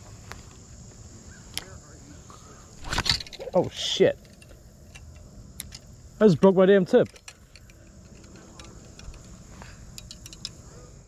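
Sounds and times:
fishing reel clicks and rattles: 0:06.9 - 0:10.6.

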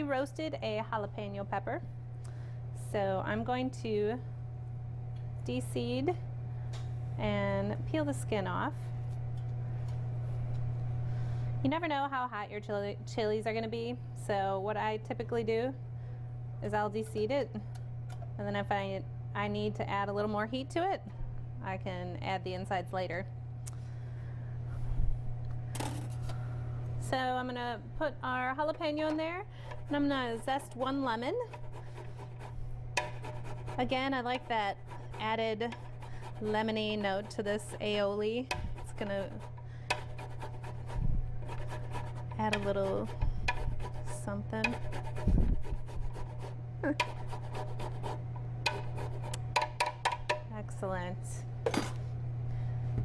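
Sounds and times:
steady low hum: 0:00.0 - 0:53.0.

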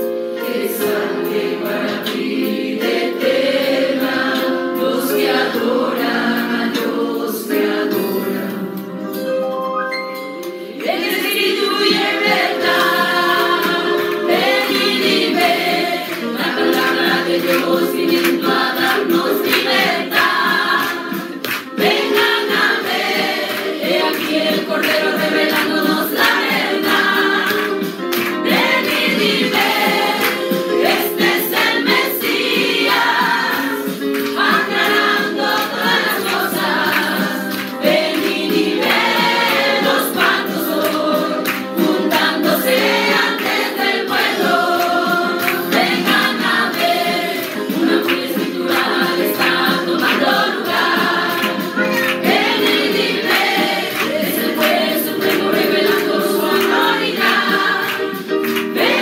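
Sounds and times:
women singing a hymn: 0:00.4 - 0:08.8, 0:10.7 - 0:59.0.

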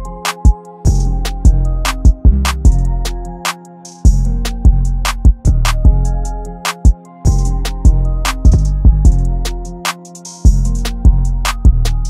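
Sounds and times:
held melodic line: 0:00.0 - 0:12.0
hi-hat ticks: 0:06.7 - 0:12.0
deep bass notes: 0:07.3 - 0:09.4.

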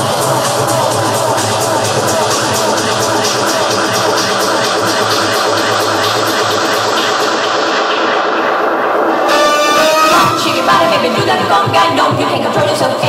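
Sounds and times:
electronic dance music: 0:00.0 - 0:13.0.

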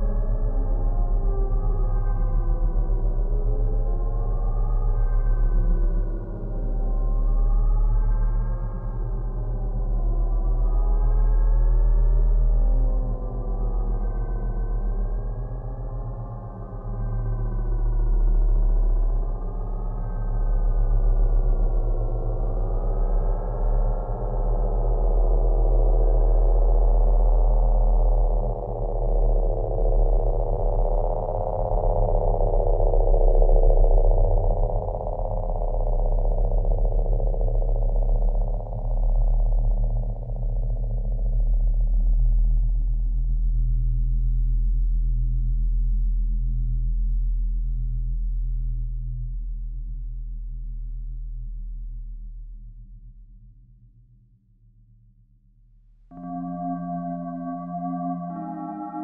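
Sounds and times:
deep synthesizer bass drone: 0:56.1 - 0:59.0
wavering sustained synth tones: 0:56.1 - 0:59.0.

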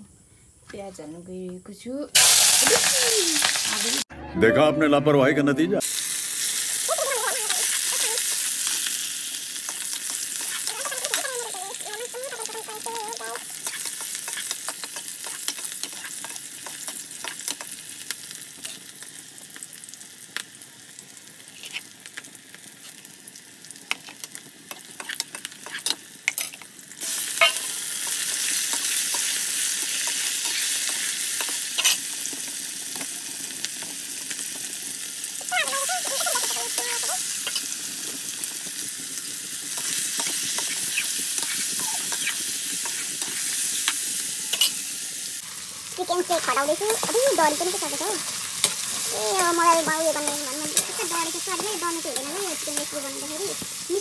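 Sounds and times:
chicken sizzling in hot oil: 0:02.1 - 0:04.1, 0:05.8 - 0:54.0.

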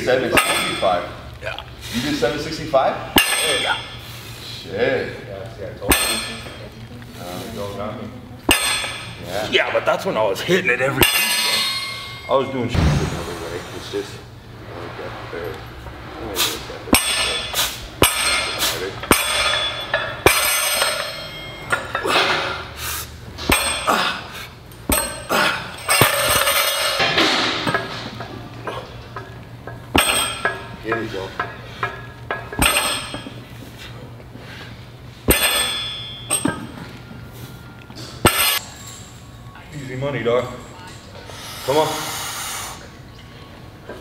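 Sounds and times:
metallic clanks of weight plates: 0:11.0 - 0:12.5, 0:16.9 - 0:22.7, 0:23.4 - 0:24.2, 0:24.8 - 0:33.6, 0:35.2 - 0:39.1.

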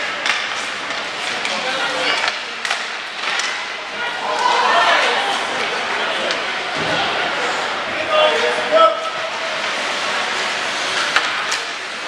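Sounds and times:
rink and crowd noise: 0:00.0 - 0:12.0.

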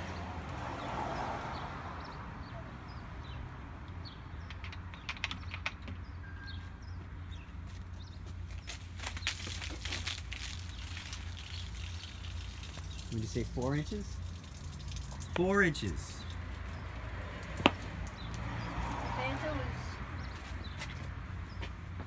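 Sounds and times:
sharp clicks: 0:03.9 - 0:06.0
crackling spatter: 0:08.7 - 0:13.2
soda fizzing and spouting foam: 0:09.2 - 0:15.4.

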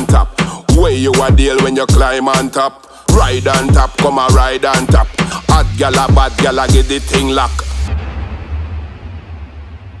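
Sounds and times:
dancehall vocals and beat: 0:00.0 - 0:07.9.

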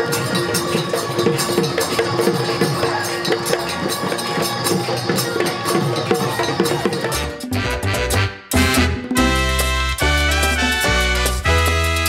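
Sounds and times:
folk music with dhol drum: 0:00.0 - 0:12.0.

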